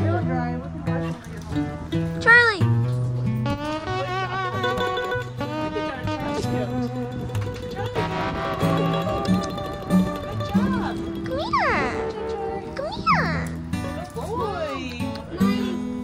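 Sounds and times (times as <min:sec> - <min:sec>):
background music melody: 0:00.0 - 0:16.0.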